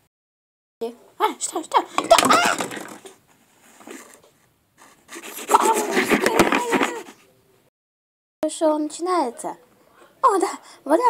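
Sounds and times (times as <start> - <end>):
camera tumbling onto table: 2.0 - 3.2.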